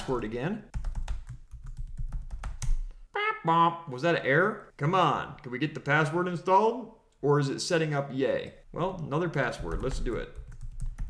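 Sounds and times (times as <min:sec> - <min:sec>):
computer keyboard typing: 0:00.7 - 0:02.9, 0:09.6 - 0:11.0.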